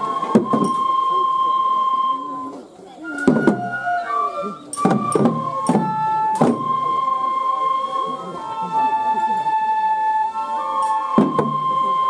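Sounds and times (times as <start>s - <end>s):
bamboo flute high note: 0.0s - 12.0s
voices murmuring: 0.0s - 12.0s.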